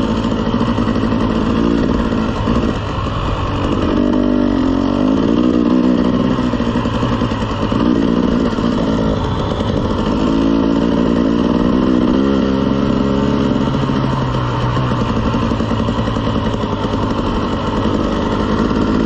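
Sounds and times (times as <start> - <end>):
dirt bike engine running: 0.0 - 19.0.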